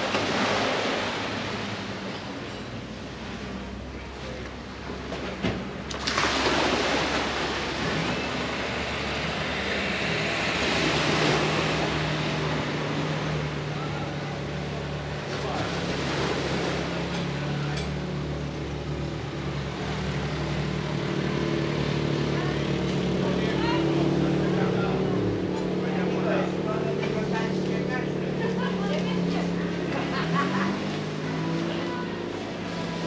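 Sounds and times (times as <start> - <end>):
low engine hum: 0.0 - 33.0
people chattering: 21.2 - 33.0.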